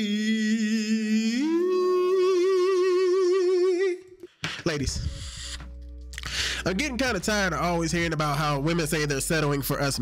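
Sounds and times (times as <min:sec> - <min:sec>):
man singing with vibrato: 0:00.0 - 0:04.3.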